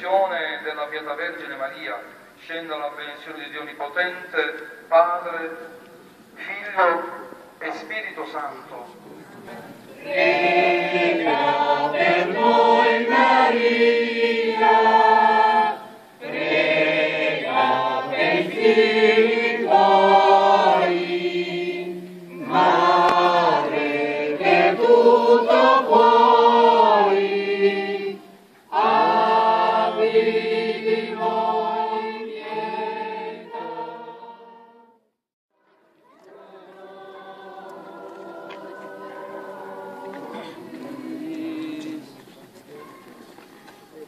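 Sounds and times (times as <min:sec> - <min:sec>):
choir singing a hymn: 0:08.9 - 0:35.0, 0:36.1 - 0:42.2.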